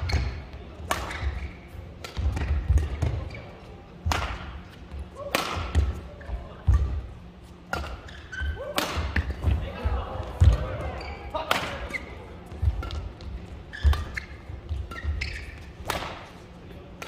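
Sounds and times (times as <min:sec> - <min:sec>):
racket hitting shuttlecock: 0:00.0 - 0:03.4, 0:04.0 - 0:04.6, 0:05.2 - 0:06.0, 0:07.6 - 0:09.6, 0:11.4 - 0:16.4
shoes squeaking on court: 0:00.0 - 0:03.8, 0:06.1 - 0:09.5, 0:10.3 - 0:16.3.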